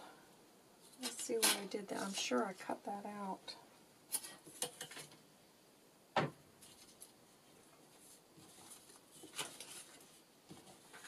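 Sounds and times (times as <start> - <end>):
paper rustling: 6.6 - 11.0.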